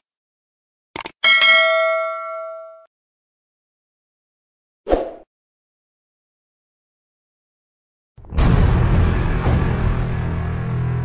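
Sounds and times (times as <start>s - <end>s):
bright bell ding: 1.2s - 2.9s.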